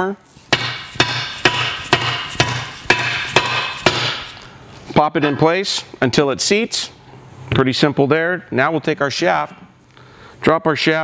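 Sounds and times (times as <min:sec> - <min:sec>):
mallet striking metal tool: 0:00.5 - 0:04.4.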